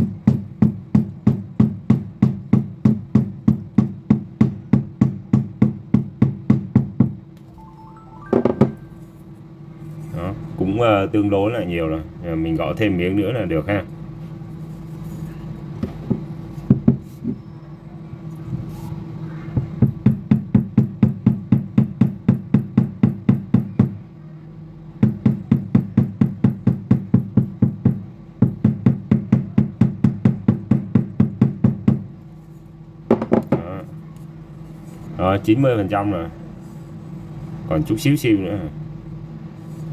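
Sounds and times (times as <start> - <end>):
knocks on speaker grille: 33.1 - 33.7.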